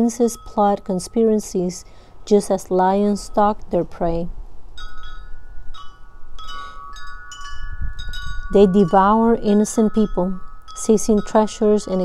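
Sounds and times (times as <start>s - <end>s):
wind chimes ringing: 0.0s - 2.0s, 4.8s - 12.0s
wind rumble: 3.6s - 11.8s.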